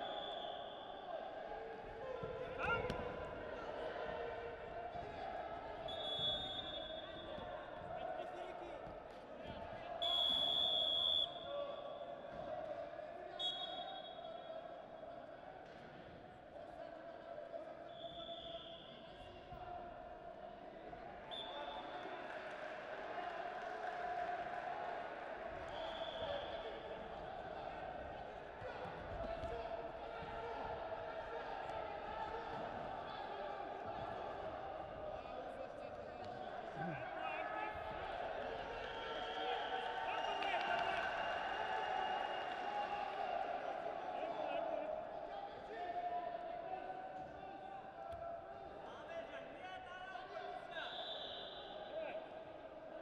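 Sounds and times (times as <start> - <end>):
referee whistle blast: 5.9 - 7.3, 10.0 - 11.5, 50.8 - 52.0.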